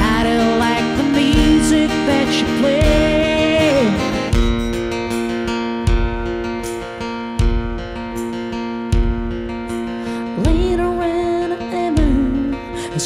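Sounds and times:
guitar chords strummed: 0.0 - 13.0.

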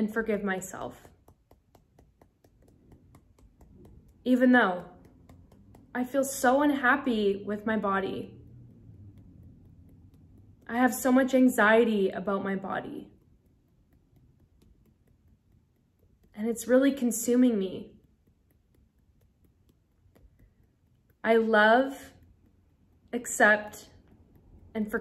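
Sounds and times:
fingertips tapping on hand: 0.0 - 12.1, 12.8 - 25.0.

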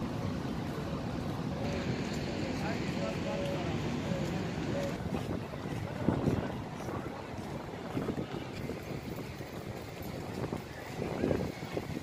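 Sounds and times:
faint passing voices: 0.0 - 12.0
wind rumbling on microphone: 0.0 - 12.0.

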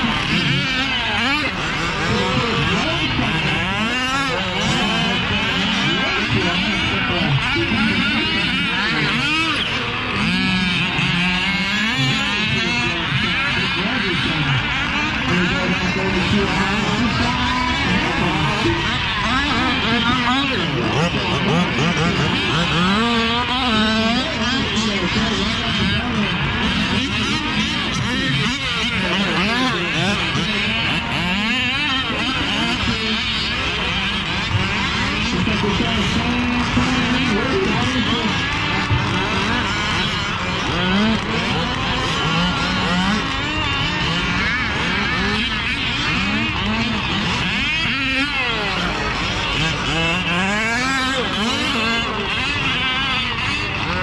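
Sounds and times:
small engines revving: 0.0 - 54.0.

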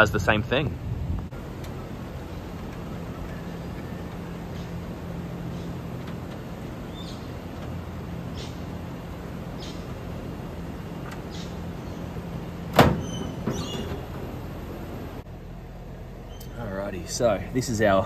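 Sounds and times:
low machine hum: 0.0 - 18.0.

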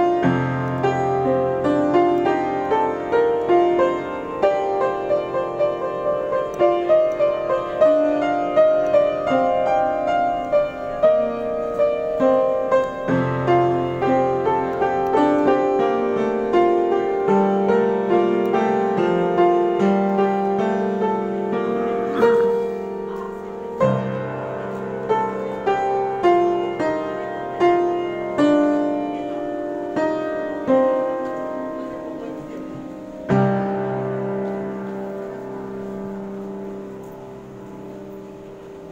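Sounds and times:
piano improvisation: 0.0 - 38.9.

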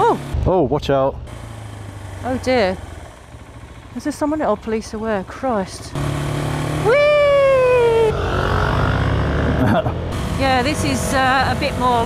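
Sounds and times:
motorcycle engine running: 0.0 - 0.6, 1.2 - 12.0
high falling vocal cry: 6.8 - 8.3.

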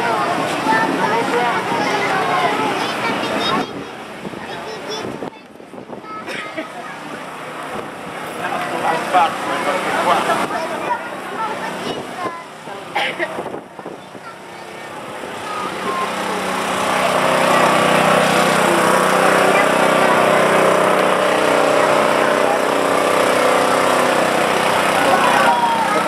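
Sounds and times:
crowd voices: 0.0 - 26.0
small engine running: 0.0 - 26.0.

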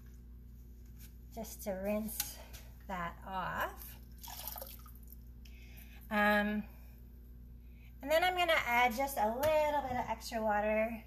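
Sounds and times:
glaze pouring and dripping: 3.8 - 5.5.

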